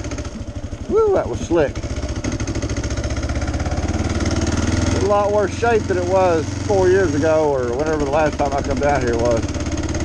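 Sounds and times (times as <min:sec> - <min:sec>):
motorcycle engine running slowly: 0:00.0 - 0:10.0.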